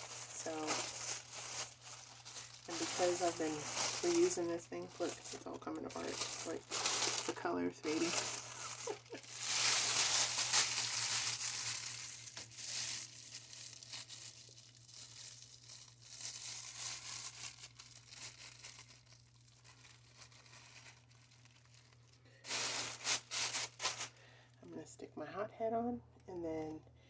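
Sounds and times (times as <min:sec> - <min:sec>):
plastic bag crinkling: 0:00.0 - 0:24.5.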